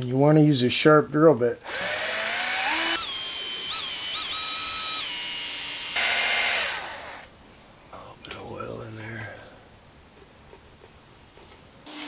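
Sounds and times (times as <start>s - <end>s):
power drill drilling into steel: 1.6s - 7.3s.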